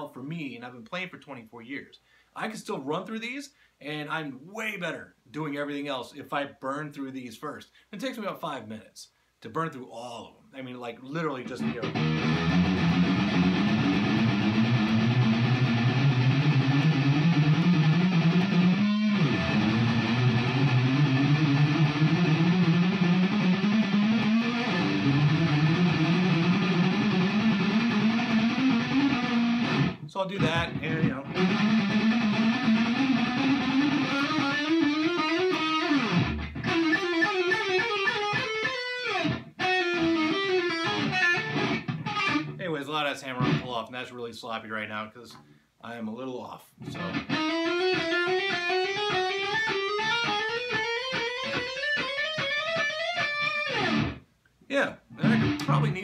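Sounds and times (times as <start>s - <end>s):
electric guitar runs: 11.7s - 42.4s, 47.3s - 54.2s.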